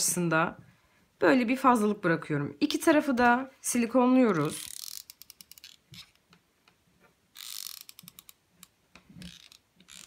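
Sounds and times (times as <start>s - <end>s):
glue gun ratcheting clicks: 4.6s - 5.8s, 7.4s - 10.0s.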